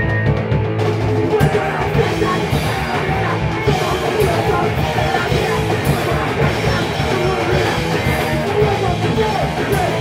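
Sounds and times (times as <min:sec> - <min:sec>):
distorted electric guitar: 0:00.0 - 0:10.0
punk rock band playing live: 0:00.0 - 0:10.0.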